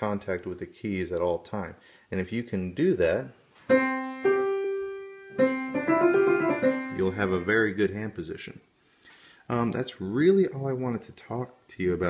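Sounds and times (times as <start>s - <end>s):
piano notes: 3.7s - 7.7s.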